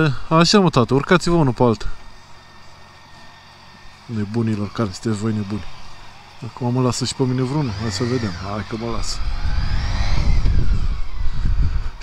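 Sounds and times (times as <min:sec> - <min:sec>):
motorcycle engine: 0:00.8 - 0:12.0
wind rumble on microphone: 0:07.7 - 0:12.0.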